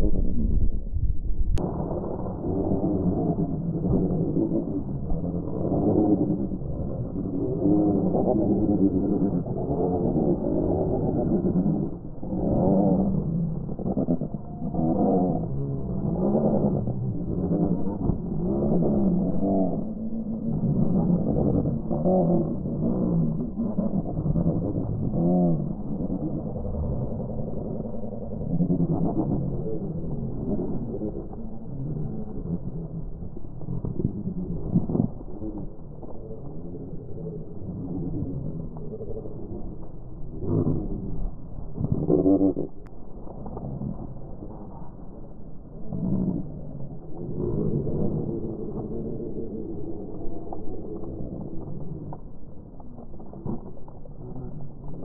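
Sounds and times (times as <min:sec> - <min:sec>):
low rumble: 0:00.0 - 0:55.0.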